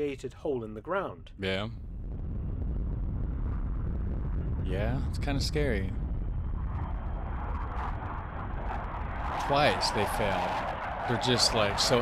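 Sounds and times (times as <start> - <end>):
jet bomber flying past: 1.9 - 12.0.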